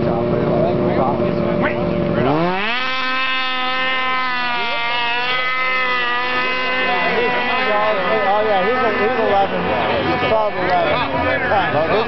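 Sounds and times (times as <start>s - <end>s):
snowmobile engine at full throttle: 0.0s - 12.0s
voices talking: 0.0s - 12.0s.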